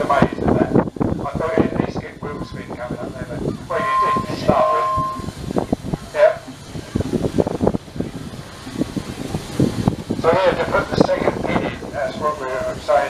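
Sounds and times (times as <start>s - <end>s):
steam hissing: 0.0s - 13.0s
steam engine whistle blasts: 3.7s - 5.5s.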